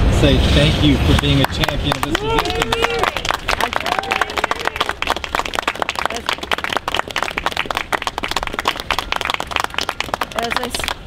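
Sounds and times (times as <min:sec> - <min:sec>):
voices: 0:00.1 - 0:05.1, 0:05.9 - 0:06.7, 0:10.2 - 0:11.0
people clapping: 0:01.1 - 0:11.0.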